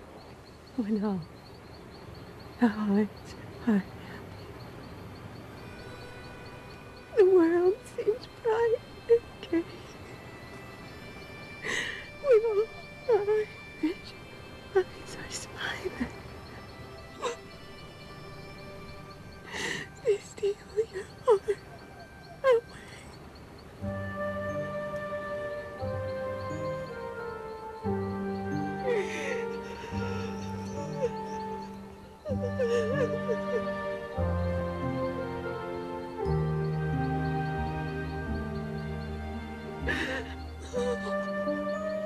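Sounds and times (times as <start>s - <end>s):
soft held music: 0.0s - 42.0s
woman singing wavering note: 7.1s - 10.2s, 12.2s - 16.2s, 24.5s - 35.1s
woman crying: 7.2s - 10.2s, 11.6s - 16.2s, 17.2s - 17.6s, 19.4s - 23.2s, 28.6s - 34.1s, 39.8s - 42.0s
woman sobbing: 7.2s - 10.3s, 11.6s - 17.6s, 19.4s - 23.2s, 28.6s - 34.1s, 39.8s - 42.0s.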